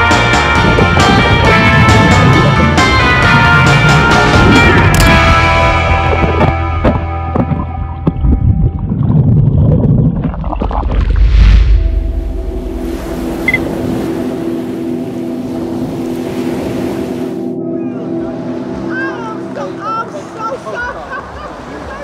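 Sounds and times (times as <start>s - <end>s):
background music: 0.0s - 9.1s, 11.4s - 22.0s
low steady hum: 8.2s - 16.3s
ocean surf: 11.2s - 22.0s.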